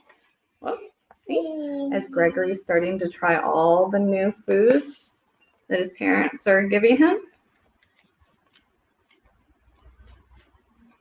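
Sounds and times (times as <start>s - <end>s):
woman speaking: 0.6s - 0.9s, 1.9s - 5.0s, 5.7s - 7.2s.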